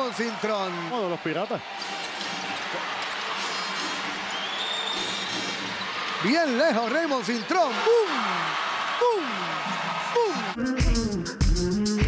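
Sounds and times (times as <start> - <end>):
crowd cheering in arena: 0.0 - 10.6.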